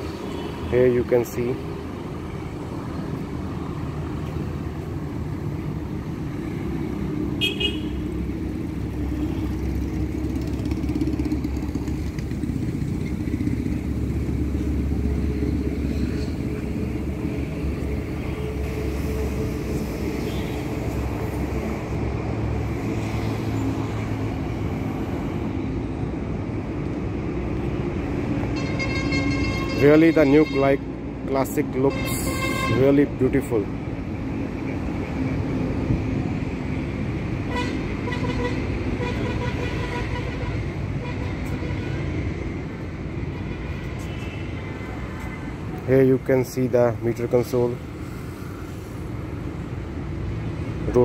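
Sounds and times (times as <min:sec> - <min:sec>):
engine and traffic rumble: 0:00.0 - 0:51.0.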